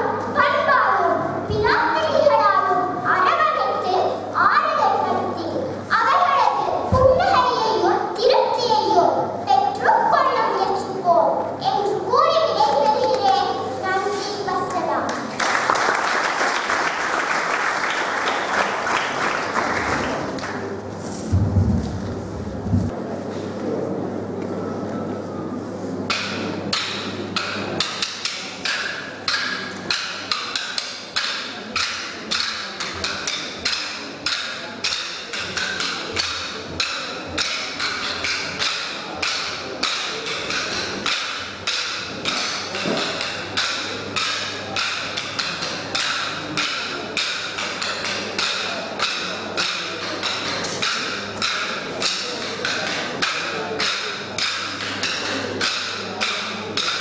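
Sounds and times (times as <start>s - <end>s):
wooden sticks clacking: 26.1s - 57.0s.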